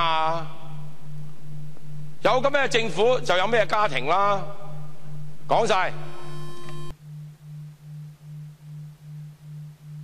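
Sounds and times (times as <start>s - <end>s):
high-pitched hum: 0.0s - 10.0s
low electronic tone pulsing: 0.0s - 10.0s.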